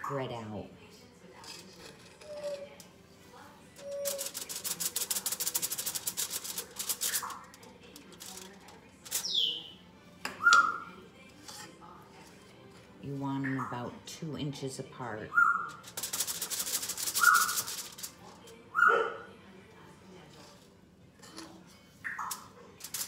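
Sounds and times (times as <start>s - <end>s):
bird chirping and whistling: 9.2s - 9.7s.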